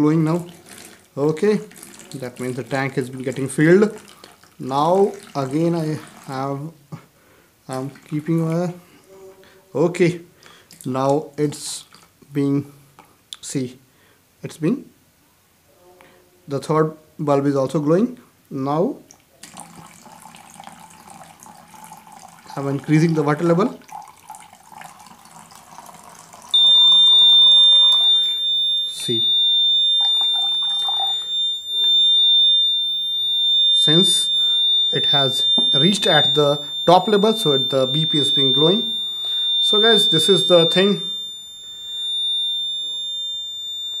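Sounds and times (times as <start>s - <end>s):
water pouring into a bowl: 0.0s - 6.7s, 7.7s - 8.8s, 19.4s - 29.4s, 30.0s - 32.0s
piezo buzzer high-pitched tone: 26.6s - 44.0s.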